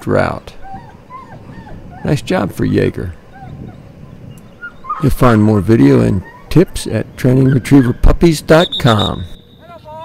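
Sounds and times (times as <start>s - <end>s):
dog whimpering: 0.4s - 2.5s, 3.1s - 8.2s.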